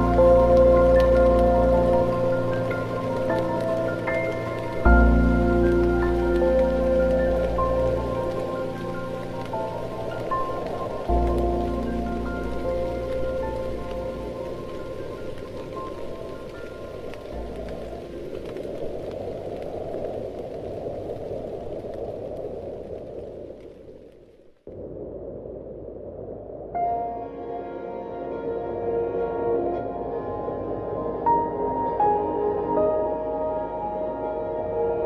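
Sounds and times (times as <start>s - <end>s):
soft instrumental music: 0.0s - 18.6s, 26.8s - 35.0s
steady rain falling: 0.0s - 35.0s.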